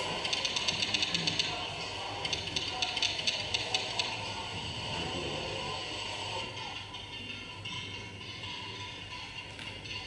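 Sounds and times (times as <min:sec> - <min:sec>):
keyboard typing clicks: 0:00.2 - 0:01.6, 0:02.2 - 0:04.2.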